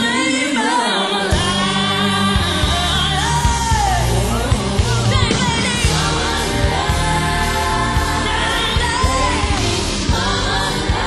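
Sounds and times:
pop band playing: 0.0s - 11.0s
woman singing: 0.0s - 11.0s
steady drum beat: 1.3s - 11.0s.

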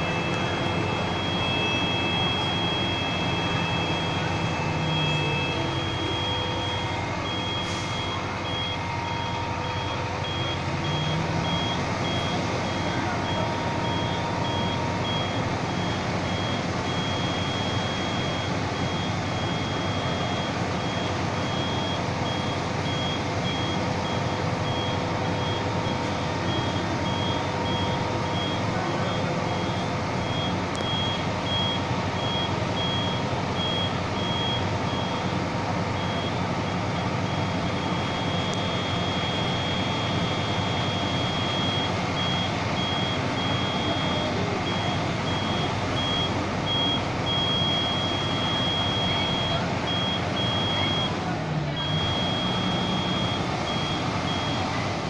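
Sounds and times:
high-pitched warning beeper: 0.0s - 54.9s
diesel engine running: 0.0s - 55.0s.

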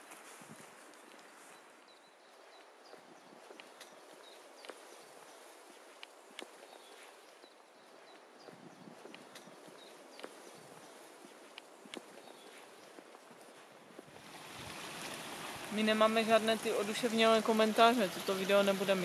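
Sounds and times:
background hiss: 0.0s - 19.0s
footsteps on trail: 0.0s - 19.0s.

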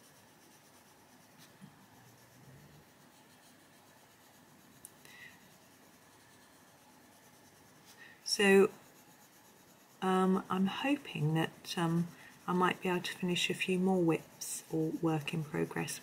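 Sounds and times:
pencil scratching on paper: 0.0s - 16.0s.

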